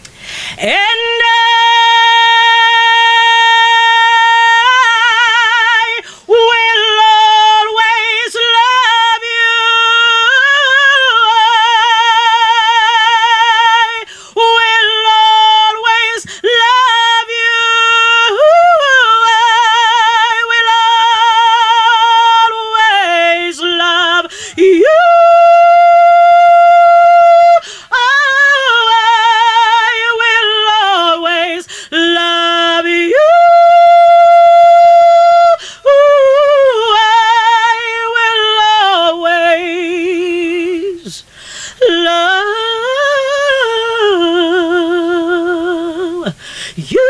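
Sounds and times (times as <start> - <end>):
singer taking breath: 0.1 - 0.6, 6.0 - 6.3, 14.1 - 14.4, 16.2 - 16.4, 24.3 - 24.6, 27.6 - 27.9, 31.7 - 31.9, 35.6 - 35.9, 41.2 - 41.8, 46.4 - 46.8
woman singing long note: 0.6 - 41.2.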